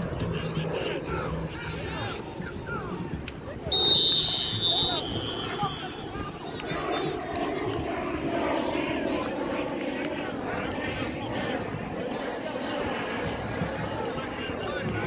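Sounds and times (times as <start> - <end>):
crowd murmur: 0.0 - 15.0
referee whistle: 3.7 - 6.6.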